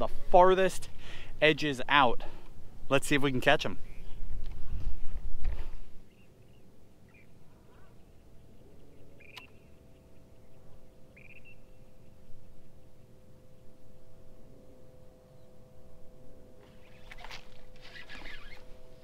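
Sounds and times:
faint steady hum: 0:00.0 - 0:19.0
high bird calls: 0:06.0 - 0:11.8, 0:16.6 - 0:18.8.

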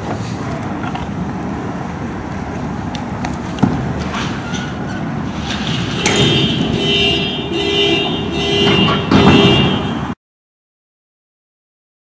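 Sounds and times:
street noise: 0:00.0 - 0:10.2
vehicle horn blasts: 0:06.0 - 0:10.2.

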